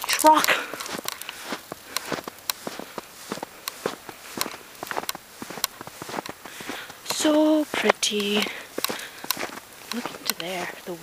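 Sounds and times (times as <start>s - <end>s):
footsteps crunching in snow: 0.0s - 11.0s.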